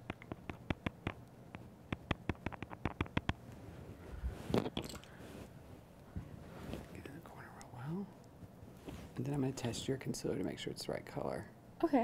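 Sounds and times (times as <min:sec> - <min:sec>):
fingertip tapping on skin: 0:00.0 - 0:03.4.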